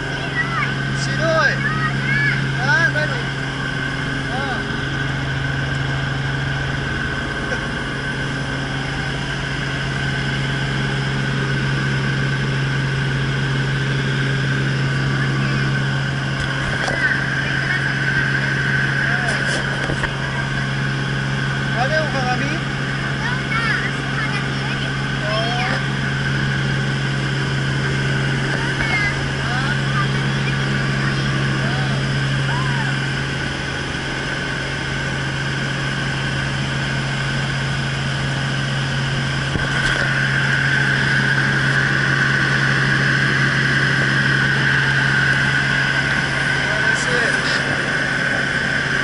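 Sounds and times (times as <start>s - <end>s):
helicopter engine and rotor drone: 0.0s - 49.0s
high engine whine: 0.0s - 49.0s.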